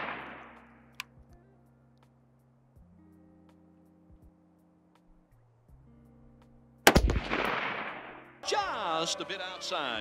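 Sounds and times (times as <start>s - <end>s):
rifle shot with echo: 0.0s - 0.6s, 6.9s - 8.3s.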